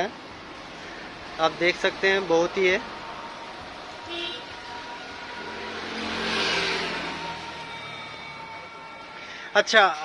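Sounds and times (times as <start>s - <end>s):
motor vehicle passing: 0.5s - 9.2s.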